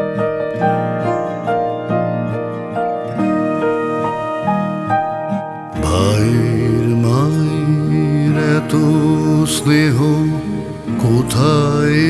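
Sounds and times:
instrumental backing: 0.0s - 12.0s
man singing with vibrato: 5.8s - 12.0s.

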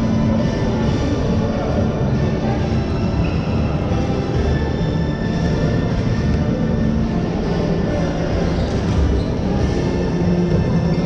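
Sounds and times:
bass-heavy background music: 0.0s - 11.0s.

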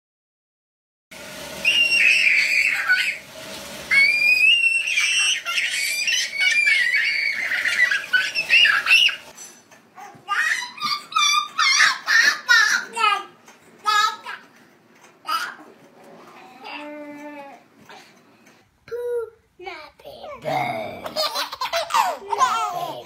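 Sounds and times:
toddler squealing with laughter: 1.6s - 3.2s, 3.9s - 9.3s, 10.3s - 12.4s
toddler giggling: 21.0s - 23.0s.

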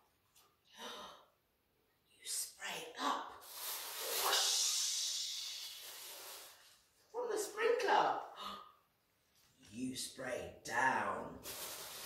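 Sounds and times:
person making shushing hiss: 3.4s - 6.8s, 11.4s - 12.0s.

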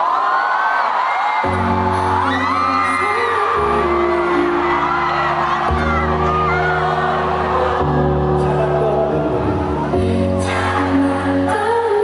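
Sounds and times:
crowd screaming and cheering: 0.0s - 12.0s
keyboard chords: 1.4s - 12.0s.

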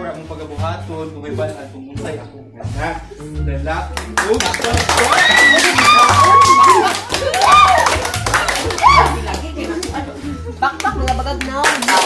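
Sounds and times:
background music: 0.0s - 12.0s
group clapping: 3.9s - 12.0s.

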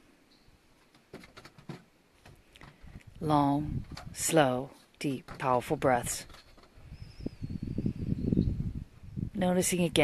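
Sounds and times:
wind buffeting microphone: 2.6s - 4.5s, 5.2s - 10.0s.

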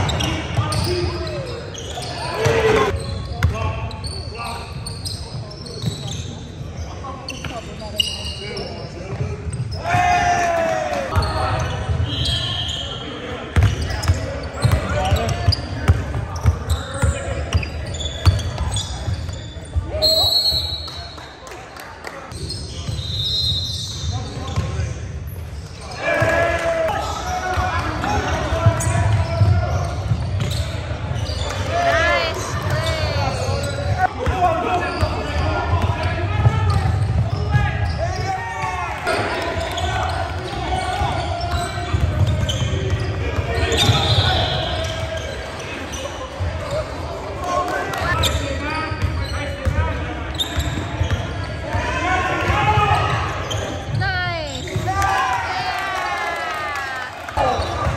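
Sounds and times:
players calling out: 25.8s - 57.9s.

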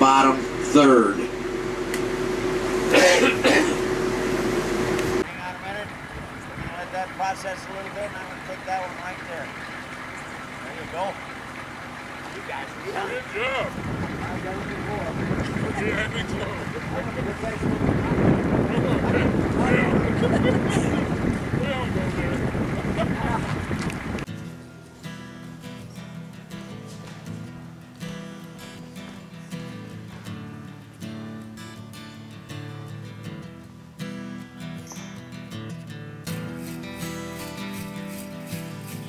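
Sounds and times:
bus engine and cabin noise: 0.0s - 7.2s, 7.8s - 24.3s
acoustic guitar music: 0.0s - 39.0s
wind buffeting microphone: 5.9s - 7.1s, 13.6s - 24.3s.

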